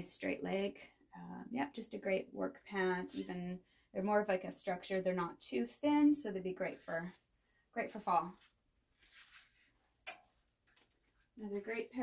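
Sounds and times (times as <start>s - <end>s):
fabric rustling: 8.1s - 12.0s.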